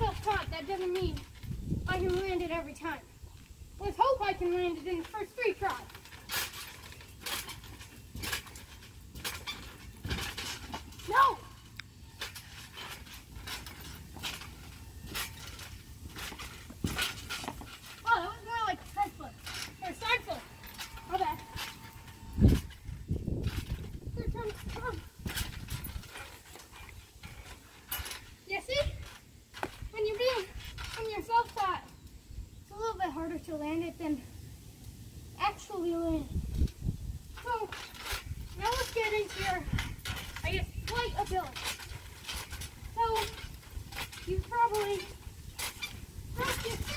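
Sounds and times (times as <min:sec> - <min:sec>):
bouncing on a trampoline: 0:00.0 - 0:34.2, 0:35.4 - 0:46.9.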